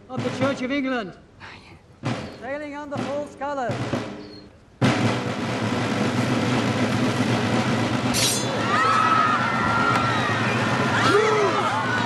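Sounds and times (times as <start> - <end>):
snare drum roll: 0.1 - 0.8, 2.0 - 11.2.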